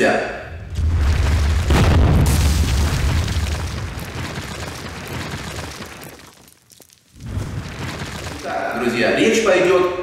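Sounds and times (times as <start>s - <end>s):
deep boom: 0.6s - 3.9s.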